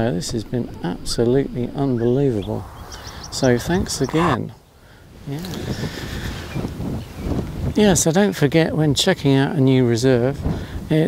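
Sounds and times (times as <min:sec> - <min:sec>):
wind on microphone: 0:00.0 - 0:08.1
man saying yeah: 0:02.0 - 0:04.6.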